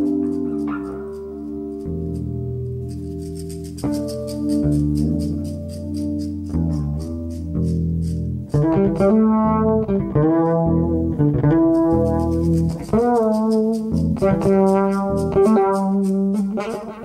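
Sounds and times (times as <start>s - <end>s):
hi-hat ticks: 0.0s - 9.2s, 11.7s - 16.9s
electric bass: 0.0s - 17.0s
held low chord: 0.0s - 17.0s
lead guitar bending notes: 0.0s - 17.0s.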